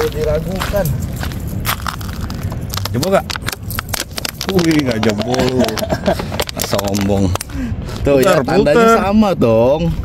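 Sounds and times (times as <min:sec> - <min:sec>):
scuffs on gravel: 0:00.0 - 0:04.3
plastic water bottle crackling: 0:01.5 - 0:07.5.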